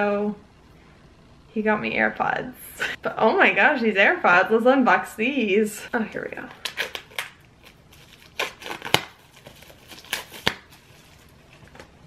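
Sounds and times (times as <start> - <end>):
plastic shrink-wrap tearing: 6.5 - 12.0.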